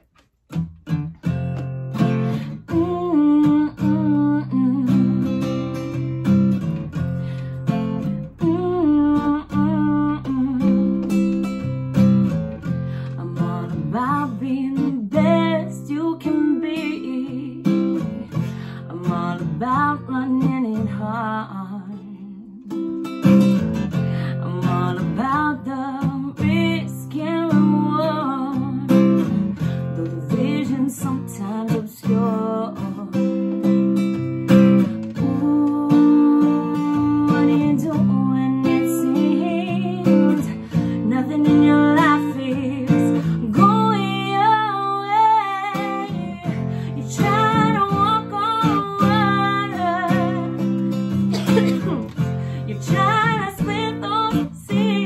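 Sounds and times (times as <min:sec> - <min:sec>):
acoustic guitar strumming and picking: 0:00.0 - 0:55.0
woman singing: 0:02.0 - 0:06.4, 0:07.6 - 0:12.0, 0:12.8 - 0:55.0.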